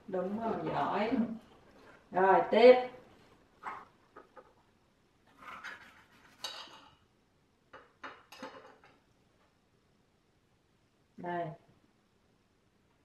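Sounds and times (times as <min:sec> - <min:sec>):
fruit and plate clinking: 0:06.3 - 0:07.0.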